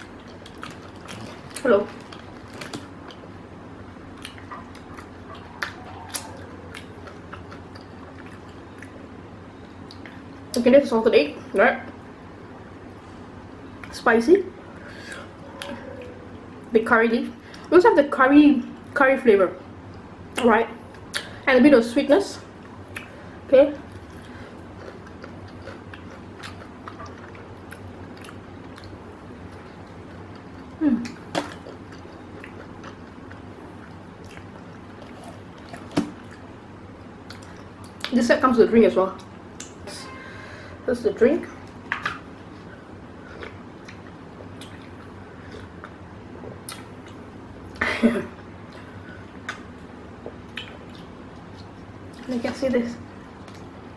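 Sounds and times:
person chewing crunchy food: 0:00.0 - 0:03.3, 0:04.1 - 0:09.0, 0:23.9 - 0:36.5
wet mouth clicks and smacks: 0:50.5 - 0:51.7.

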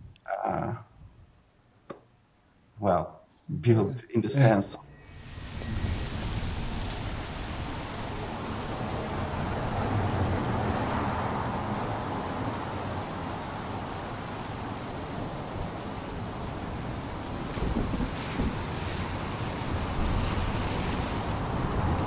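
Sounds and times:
street noise rush: 0:04.8 - 0:22.0.

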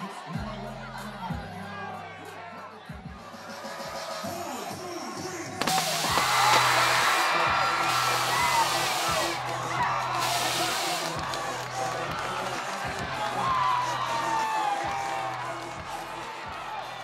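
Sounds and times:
background music with bass: 0:00.0 - 0:17.0
crowd cheering and shouting: 0:00.0 - 0:17.0.

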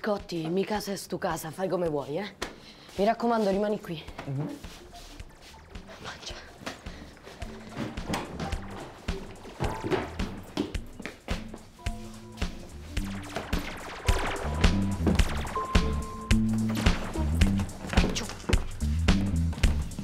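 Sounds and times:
drums keeping a beat: 0:06.8 - 0:20.0
stepping bass line: 0:11.9 - 0:20.0.

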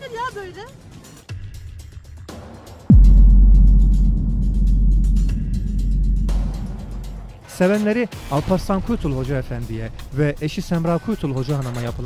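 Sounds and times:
deep boom: 0:02.9 - 0:07.6
low rumbling drone: 0:02.9 - 0:07.6.

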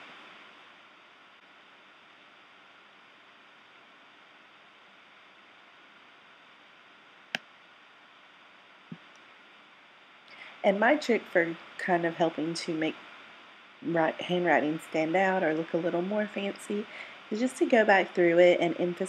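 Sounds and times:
faint room tone hiss: 0:00.0 - 0:19.0.

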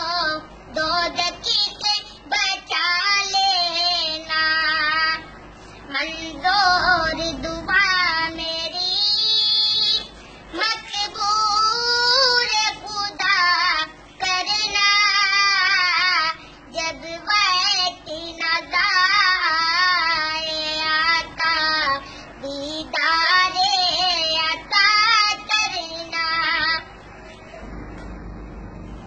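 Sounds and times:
boy singing unaccompanied: 0:00.0 - 0:05.3, 0:05.9 - 0:26.9.

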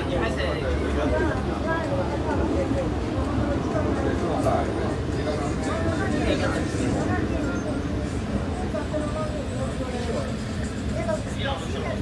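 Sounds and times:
bus rumbling from inside: 0:00.0 - 0:12.0
people talking indistinctly: 0:00.0 - 0:12.0.

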